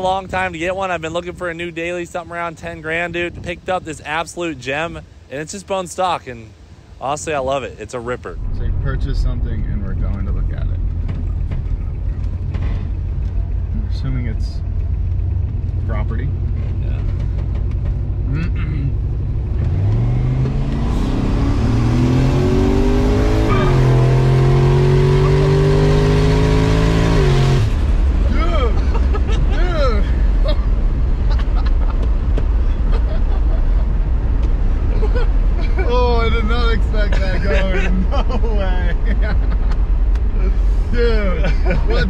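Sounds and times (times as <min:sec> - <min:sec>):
road noise: 0:00.0 - 0:42.0
car engine at full throttle: 0:08.3 - 0:42.0.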